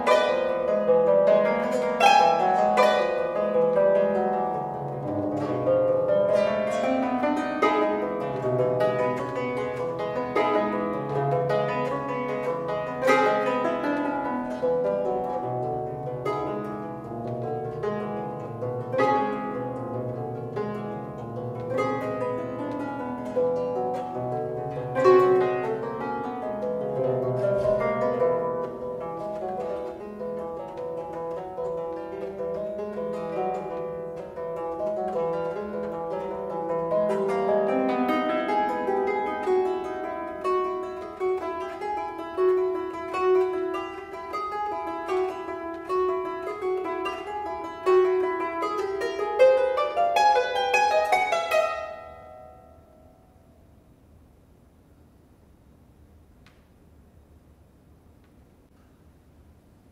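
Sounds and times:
harp plucked notes: 0.0s - 53.7s.

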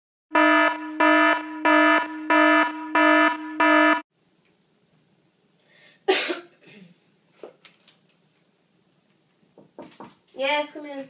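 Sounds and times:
electronic alarm beeping: 0.3s - 4.0s.

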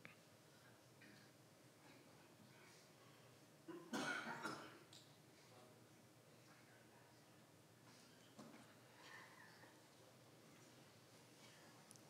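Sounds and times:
person coughing: 3.7s - 4.8s.

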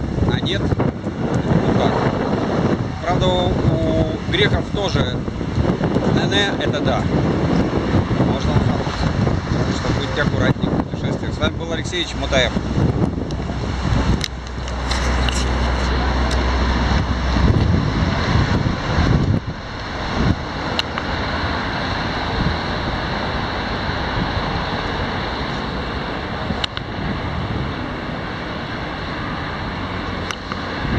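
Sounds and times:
passing cars: 0.0s - 30.9s
wind buffeting microphone: 0.0s - 30.9s.

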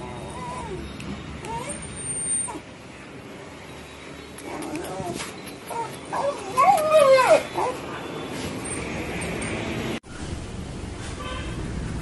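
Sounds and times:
dog whining and crying: 0.0s - 2.7s, 4.5s - 7.9s.

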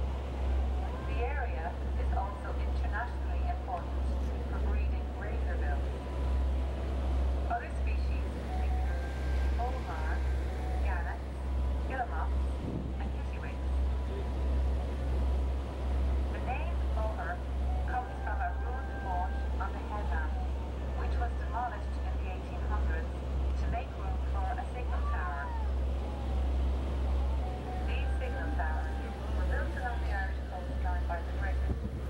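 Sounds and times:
boat engine droning: 0.0s - 32.0s.

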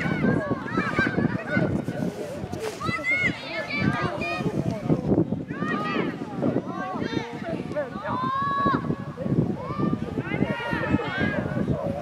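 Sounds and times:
high voices shouting: 5.5s - 12.0s.

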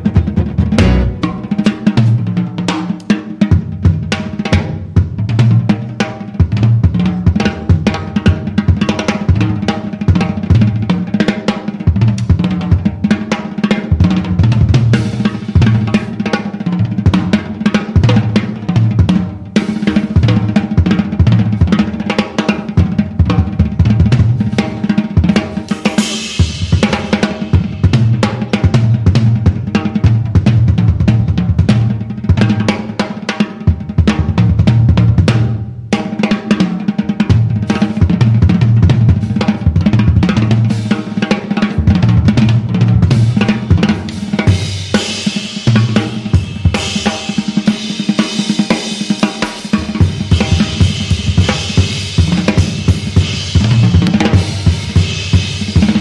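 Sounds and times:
jazz drum solo: 0.0s - 56.0s.

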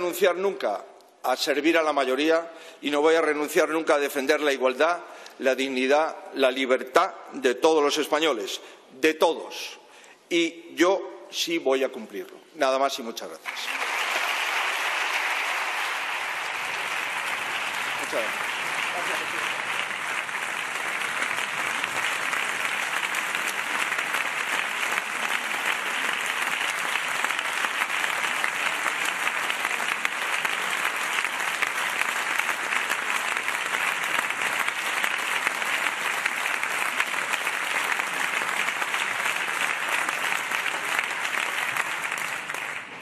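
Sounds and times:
crowd applause: 13.4s - 43.0s.

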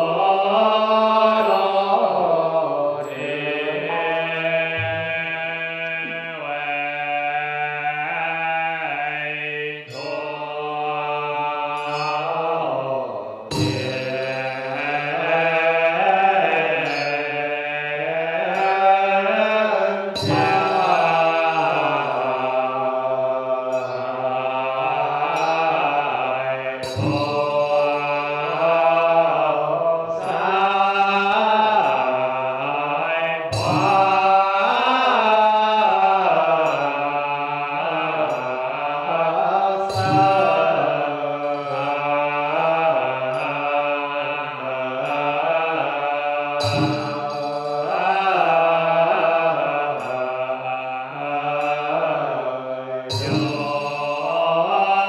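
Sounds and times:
monk and congregation chanting: 0.0s - 55.0s
sharp percussion strike: 3.0s - 6.3s, 9.9s - 22.9s, 23.7s - 37.1s, 37.8s - 43.7s, 44.7s - 50.2s, 53.1s - 55.0s.

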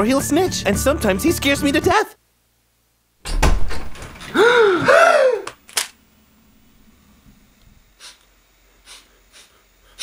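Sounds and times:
loud thump: 3.3s - 4.1s.

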